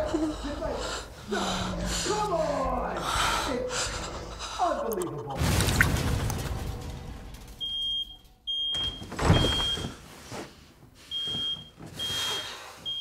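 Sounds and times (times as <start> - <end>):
smoke alarm beeping: 7.6 - 10.0, 11.1 - 13.0.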